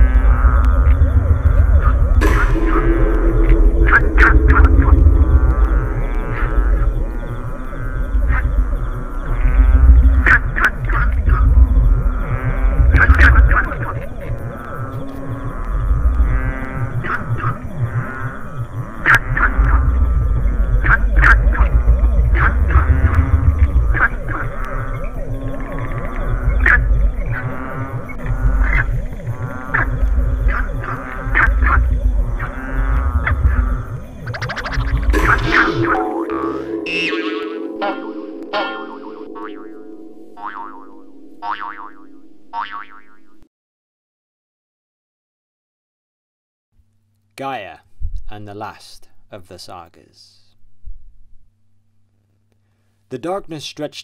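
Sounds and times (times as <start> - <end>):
pulsing bass: 0.0 - 9.0, 31.4 - 42.6
warbling electronic tones: 0.0 - 9.5, 29.8 - 43.4
chime-like notes: 2.2 - 6.9, 35.2 - 41.5
held synth chord: 2.2 - 7.7, 35.1 - 42.6.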